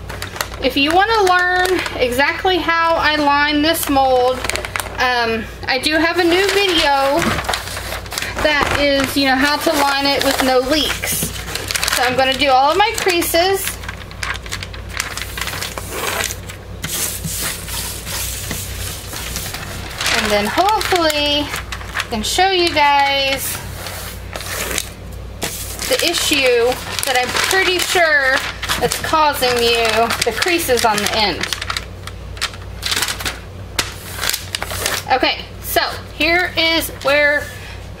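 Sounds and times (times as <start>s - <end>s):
paper rustling and rubbing: 5.9s - 35.1s.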